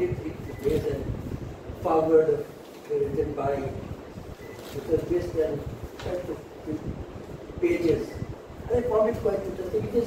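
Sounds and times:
man speaking: 0.0 - 1.2, 1.8 - 4.0, 4.7 - 7.0, 7.6 - 10.0.

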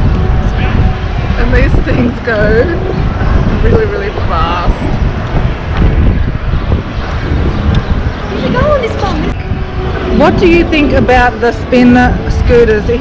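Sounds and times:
wind buffeting microphone: 0.0 - 13.0
voices: 0.4 - 5.3, 8.0 - 13.0.

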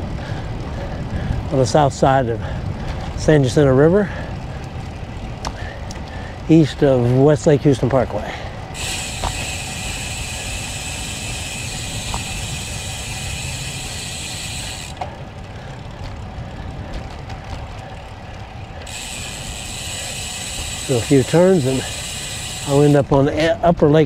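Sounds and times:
bicycle freehub ticking: 0.0 - 24.0
road noise from riding: 0.0 - 24.0.

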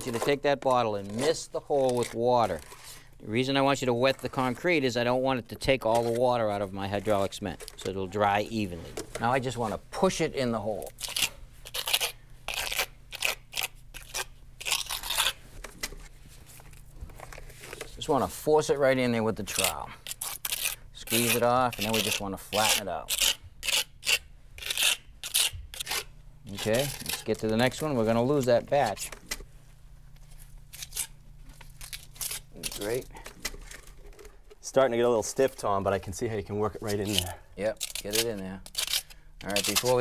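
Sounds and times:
low steady hum: 0.0 - 40.0.

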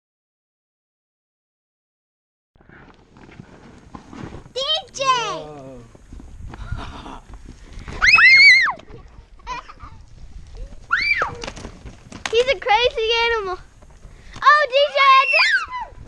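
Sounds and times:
children squealing and shrieking: 8.0 - 8.9, 10.6 - 11.6, 14.4 - 16.0.

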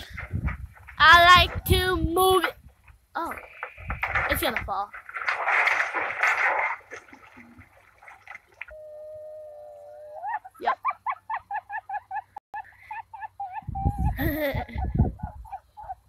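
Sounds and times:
water splashing: 3.4 - 8.8.

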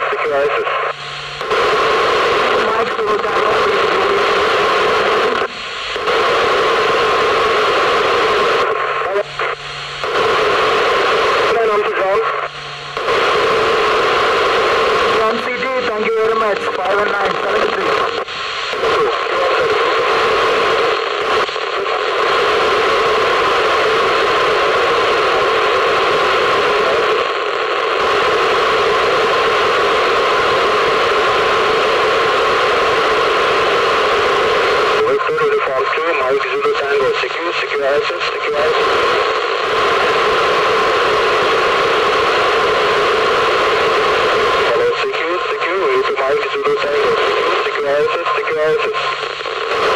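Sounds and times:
noisy radio voice transmissions: 0.0 - 49.9
radio receiver hiss: 0.0 - 49.9.

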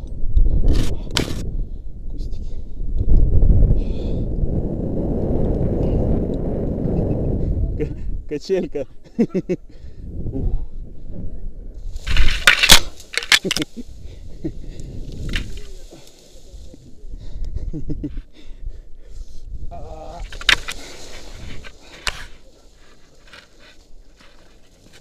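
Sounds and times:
wind rumbling on microphone: 0.0 - 25.0
person laughing: 9.0 - 9.7, 17.4 - 18.3
crackling and rustling through bushes: 11.8 - 17.4, 19.2 - 25.0.

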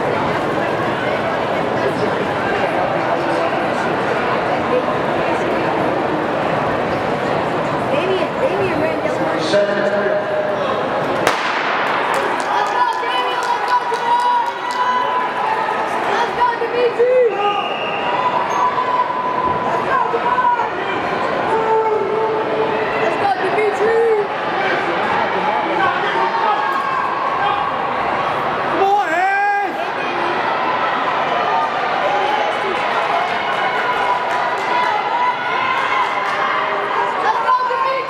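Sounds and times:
spectators yelling and cheering: 9.8 - 38.0
starter pistol shot: 11.3 - 12.0.

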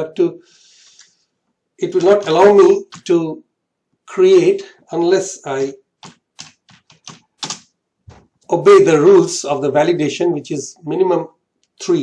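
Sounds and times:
keyboard typing: 1.9 - 3.2, 6.0 - 8.2.

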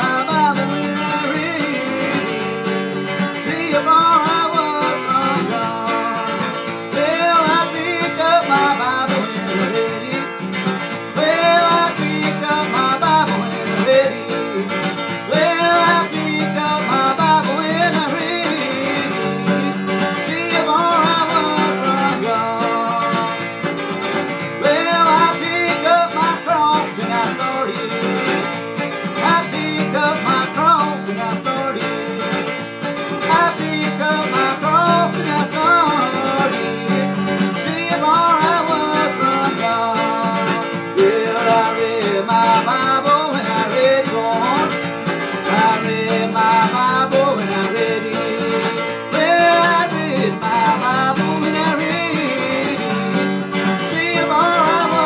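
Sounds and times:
acoustic guitar strumming: 0.0 - 55.0
man singing: 0.0 - 55.0.

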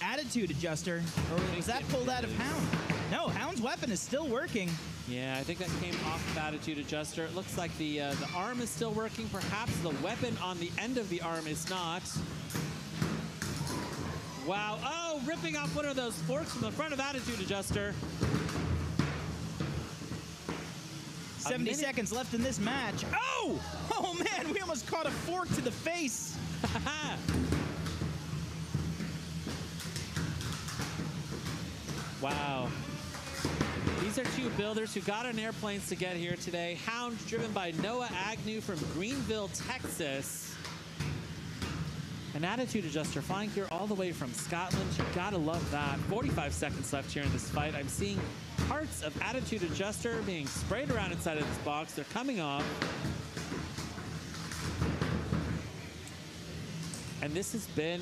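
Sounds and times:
noisy background: 0.0 - 58.0.

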